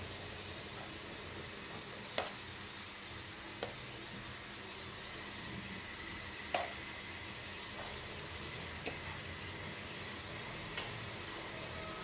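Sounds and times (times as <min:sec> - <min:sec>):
onions and meat sizzling in pans: 0:00.0 - 0:12.0.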